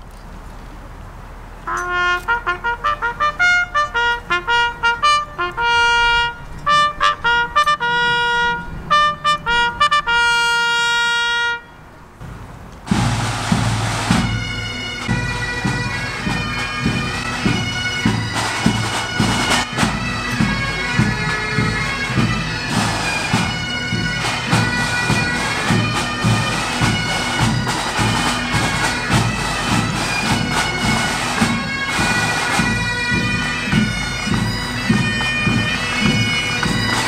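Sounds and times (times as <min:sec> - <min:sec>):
bugle call: 0:01.6 - 0:11.8, 0:12.9 - 0:37.0
bagpipes with drone: 0:01.7 - 0:11.7, 0:12.9 - 0:37.0
snare and bass drum beats: 0:12.2 - 0:37.0.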